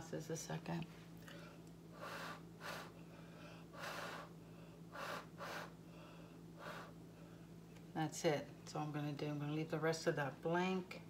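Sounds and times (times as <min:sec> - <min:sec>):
steady low hum: 0:00.0 - 0:11.0
puffs of breath blown by mouth: 0:01.4 - 0:07.3.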